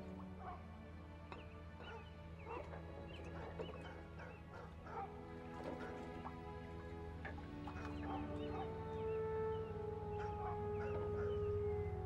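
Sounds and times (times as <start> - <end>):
soft sustained film music: 0.0 - 12.0.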